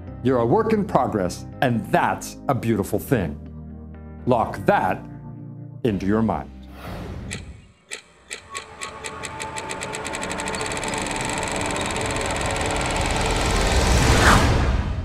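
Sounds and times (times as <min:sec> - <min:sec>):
synthesized clicks into buzz: 0:07.3 - 0:13.8
synth sweep: 0:11.4 - 0:14.9.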